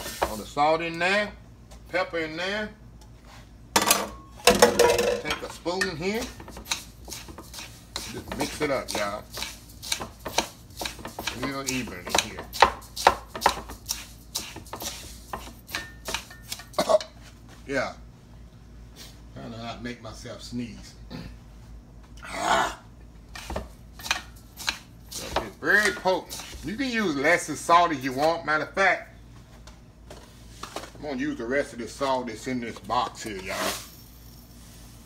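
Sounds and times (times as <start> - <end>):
metal spoon scraping salt in a bowl: 6.0 - 16.8, 23.4 - 26.8, 33.4 - 34.5.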